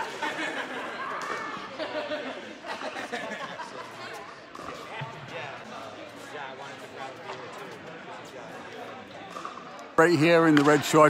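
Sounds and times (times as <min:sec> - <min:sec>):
pickleballs bouncing off paddles: 0:08.6 - 0:11.0.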